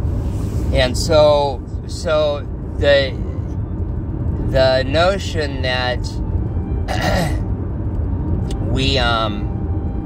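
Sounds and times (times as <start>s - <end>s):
steady low rumble: 0.0s - 10.0s
man clearing his throat: 6.9s - 7.4s.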